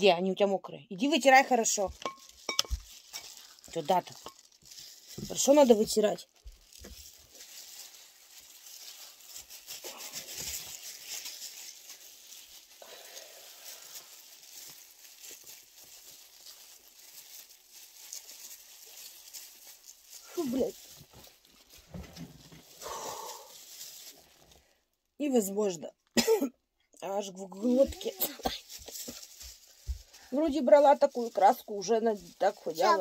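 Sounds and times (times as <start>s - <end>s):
gloved hands squishing hair dye: 1.2s - 24.8s, 27.5s - 33.0s.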